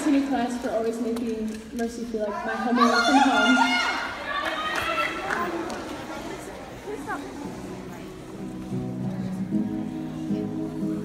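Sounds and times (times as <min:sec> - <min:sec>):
indistinct voices in a hall: 0:00.0 - 0:11.0.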